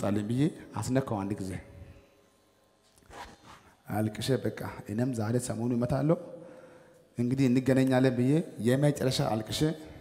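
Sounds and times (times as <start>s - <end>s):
man speaking: 7.2s - 9.9s.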